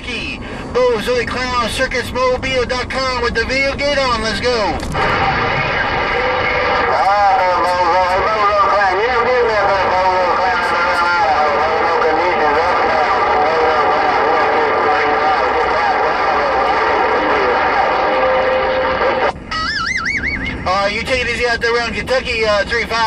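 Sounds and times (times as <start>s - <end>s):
garbled radio voice: 0.0s - 23.0s
radio static hiss: 2.2s - 19.6s
steady electronic tone: 4.9s - 8.4s, 12.8s - 20.7s
warbling electronic beep: 19.5s - 20.7s.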